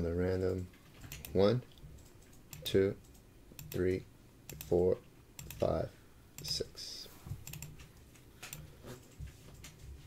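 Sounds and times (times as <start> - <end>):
mouse and keyboard clicks: 7.4 - 9.7.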